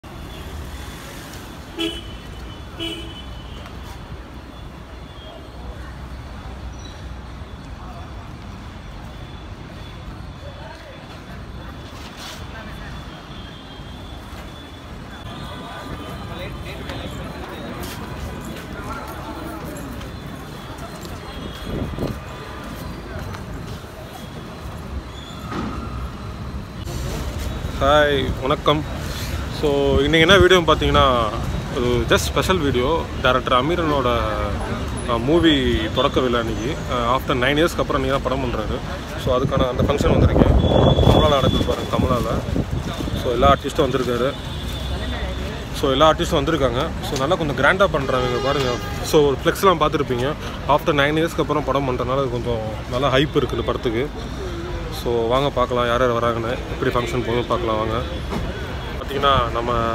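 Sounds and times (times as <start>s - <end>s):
street traffic rumbling: 0.0s - 59.9s
vehicle horn toot: 1.8s - 3.7s, 40.6s - 42.2s, 48.0s - 49.1s.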